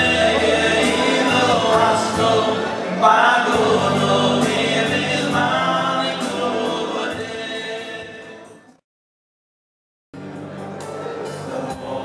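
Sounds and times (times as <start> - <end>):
male choir singing in harmony: 0.0 - 8.8, 11.2 - 12.0.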